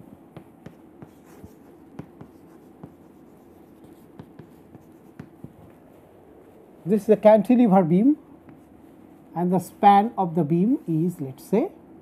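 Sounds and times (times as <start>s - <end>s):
chalk tapping on chalkboard: 0.0s - 5.9s, 8.4s - 8.8s.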